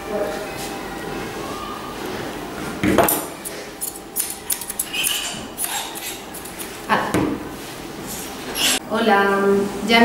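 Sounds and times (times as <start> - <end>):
scissors snipping: 3.8 - 6.7.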